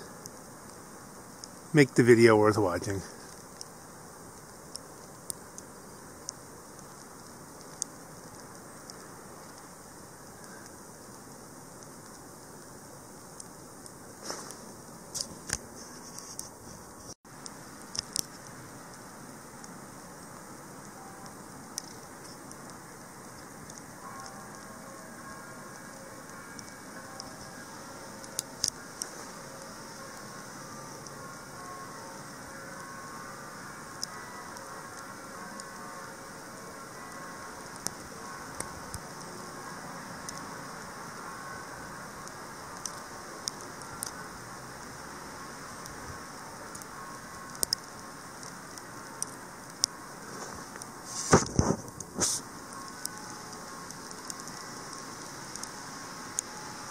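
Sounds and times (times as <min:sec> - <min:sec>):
quiet outdoor air hiss: 0:00.0 - 0:56.9
distant bells ringing: 0:20.9 - 0:22.2, 0:23.8 - 0:50.3.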